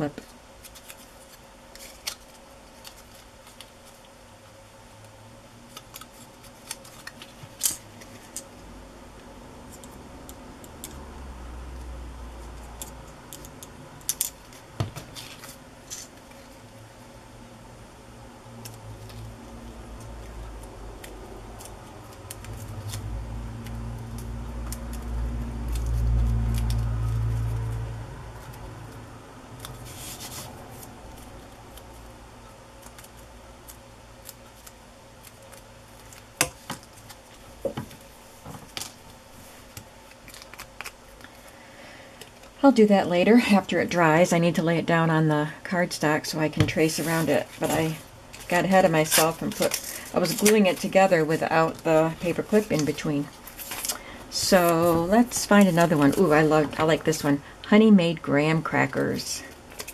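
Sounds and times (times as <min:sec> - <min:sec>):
paper rustling: 0:29.6 - 0:32.0, 0:47.0 - 0:56.6.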